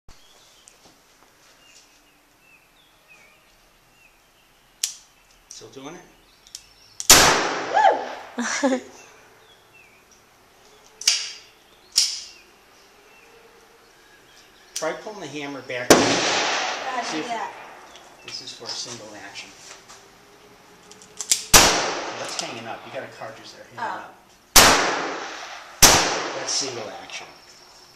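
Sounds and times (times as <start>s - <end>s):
high bird chirps: 8.8s - 15.8s.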